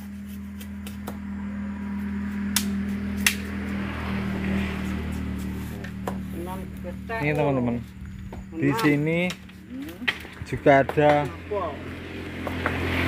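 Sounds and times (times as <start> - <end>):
low mechanical hum: 0.0 - 13.0
bamboo knocking: 5.4 - 6.3.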